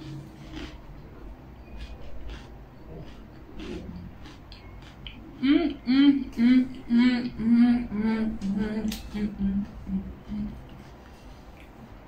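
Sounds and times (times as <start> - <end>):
woman humming: 5.4 - 10.8.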